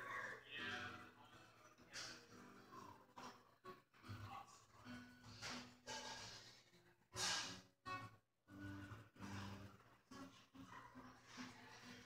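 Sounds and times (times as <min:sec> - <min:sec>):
faint guitar notes: 0:00.0 - 0:06.5.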